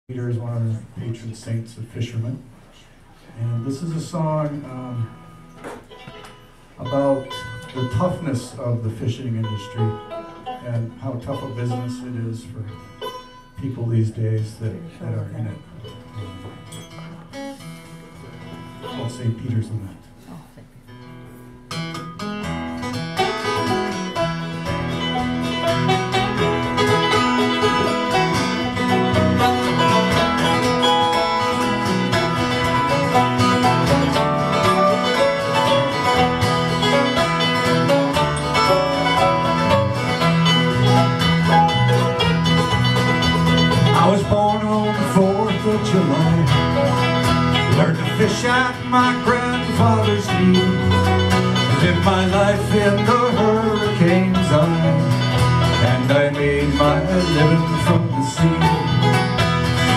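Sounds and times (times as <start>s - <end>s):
acoustic guitar: 0.0s - 59.9s
mandolin: 0.1s - 59.9s
banjo: 2.0s - 59.9s.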